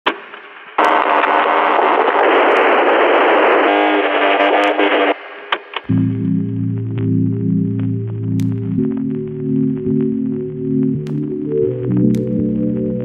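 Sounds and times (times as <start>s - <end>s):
radio-like static noise: 0.0s - 13.0s
clicks: 5.5s - 13.0s
pitched hum: 5.9s - 13.0s.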